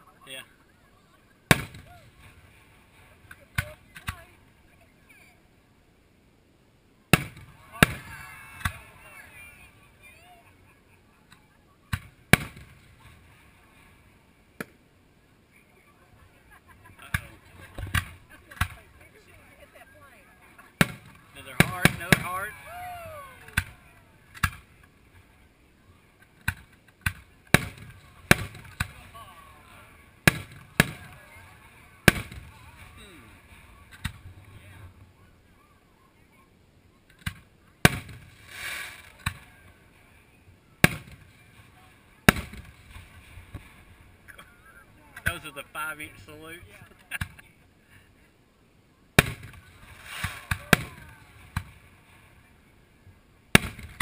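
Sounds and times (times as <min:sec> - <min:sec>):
firework shells booming: 0:01.5 - 0:02.7, 0:07.1 - 0:08.9, 0:11.9 - 0:13.4, 0:20.7 - 0:22.6, 0:26.4 - 0:29.2, 0:30.0 - 0:34.6, 0:37.2 - 0:39.6, 0:40.8 - 0:44.0, 0:49.2 - 0:52.2, 0:53.5 - 0:54.0.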